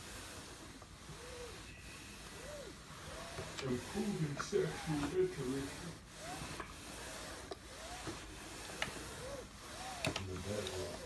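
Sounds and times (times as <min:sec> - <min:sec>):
iron rubbing hiss on fabric: 0:00.0 - 0:11.0
faint squeaks: 0:01.1 - 0:08.0.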